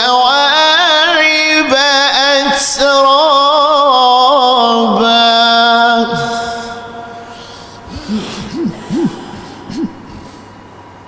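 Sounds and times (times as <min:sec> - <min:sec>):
man chanting recitation: 0:00.0 - 0:10.3
short voice calls: 0:07.3 - 0:10.5.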